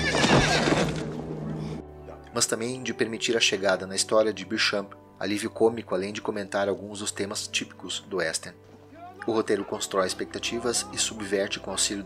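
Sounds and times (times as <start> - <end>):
horse whinnying: 0.0 - 1.2
low film music: 0.0 - 12.0.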